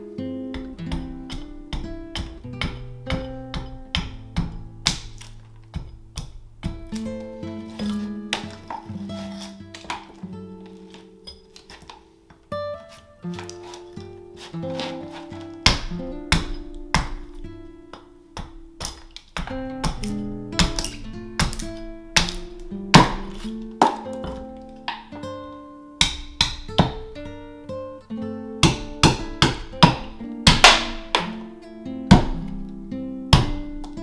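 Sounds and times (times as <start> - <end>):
acoustic guitar plucked and strummed: 0.0 - 34.0.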